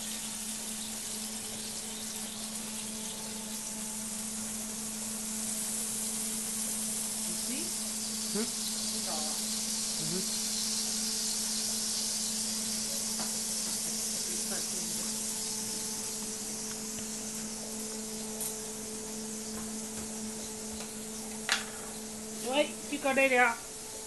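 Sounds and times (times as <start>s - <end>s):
patty sizzling on griddle: 0.0s - 23.6s.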